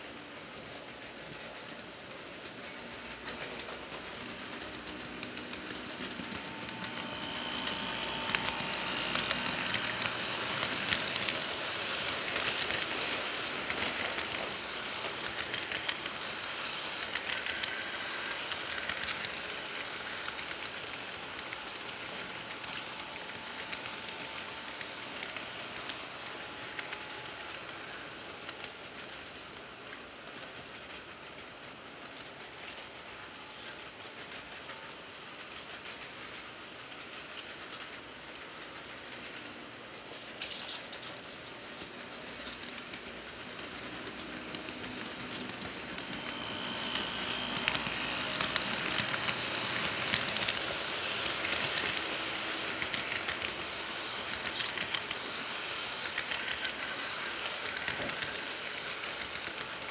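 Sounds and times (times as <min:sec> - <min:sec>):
faint locomotive motor whine: 0:00.0 - 0:59.9
model train wheels rattling: 0:00.0 - 0:59.9.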